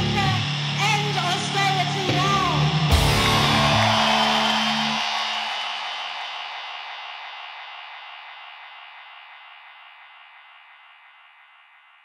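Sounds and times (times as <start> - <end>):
cymbal crash: 1.8 - 10.2
instrumental rock band chord: 2.9 - 5.0.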